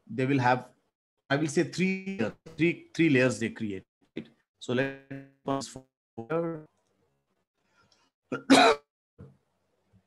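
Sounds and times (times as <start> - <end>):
person coughing: 8.3 - 8.9.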